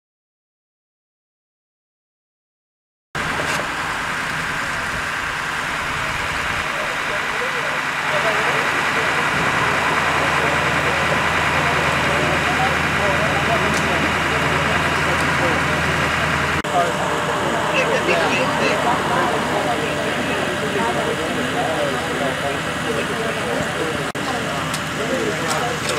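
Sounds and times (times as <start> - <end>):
vehicle engine idling: 3.2 - 25.9
people talking indistinctly: 6.0 - 25.9.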